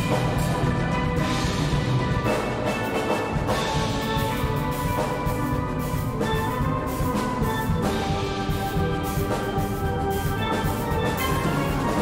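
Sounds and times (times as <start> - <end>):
drum kit beat: 0.0 - 12.0
steel band playing calypso: 0.0 - 12.0.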